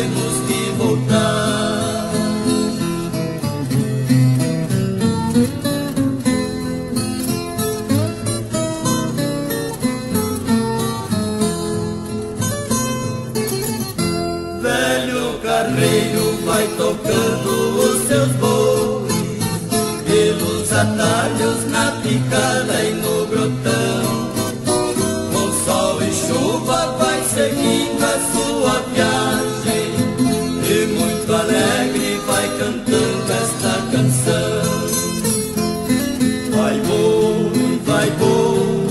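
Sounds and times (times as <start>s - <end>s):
plucked acoustic guitars: 0.0s - 38.9s.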